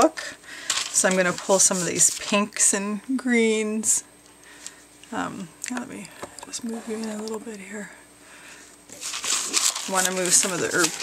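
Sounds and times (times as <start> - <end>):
paper sheet rustling and crinkling: 0.6 - 2.5, 8.9 - 11.0.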